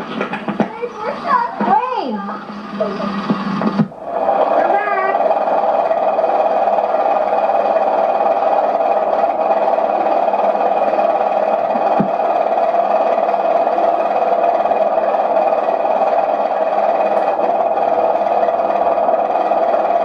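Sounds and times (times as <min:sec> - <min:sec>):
steady even noise: 0:00.0 - 0:20.0.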